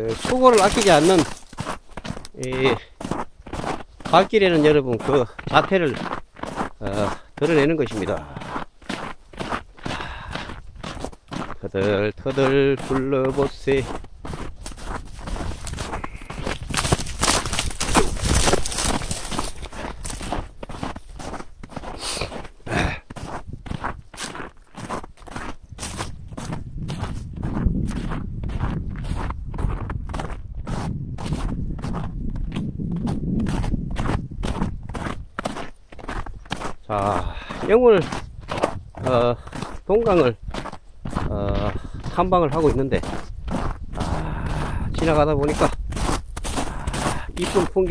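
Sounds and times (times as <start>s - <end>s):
footsteps crunching on ice and gravel: 0.0s - 47.9s.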